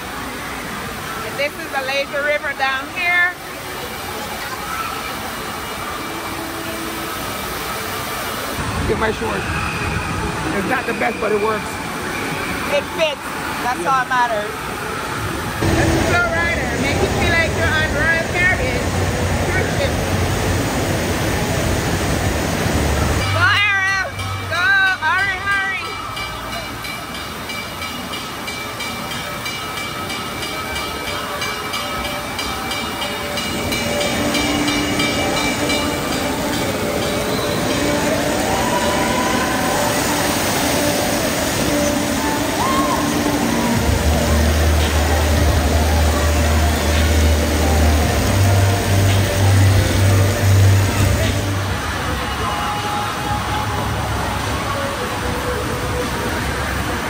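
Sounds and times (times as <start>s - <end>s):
rushing water: 0.0s - 57.0s
crowd voices: 28.5s - 57.0s
high rising calls or whistles: 33.4s - 45.3s
background music with bass line: 43.7s - 51.8s.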